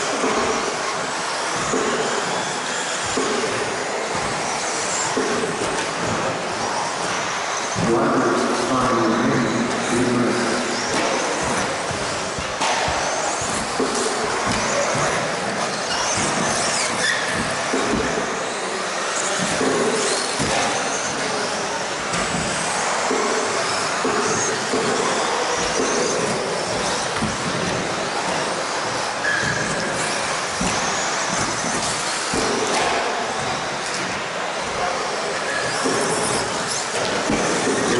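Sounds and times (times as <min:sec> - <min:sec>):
electric motors whining: 0:00.0 - 0:37.9
tyre and chassis noise: 0:00.0 - 0:37.9.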